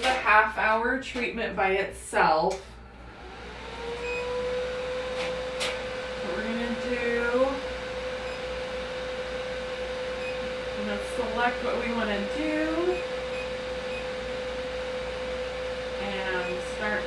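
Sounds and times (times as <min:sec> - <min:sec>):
machine steady mid-pitched tone: 0:06.3 - 0:17.0.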